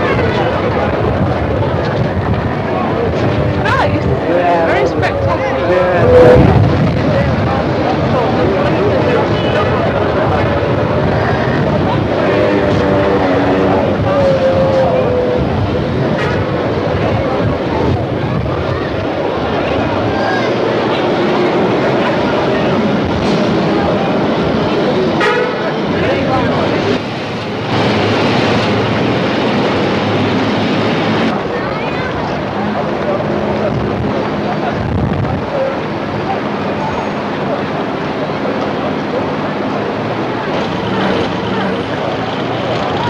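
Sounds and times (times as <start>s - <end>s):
crowd chatter: 0.0s - 43.0s
indistinct voices: 0.0s - 43.0s
traffic rumble: 0.0s - 43.0s.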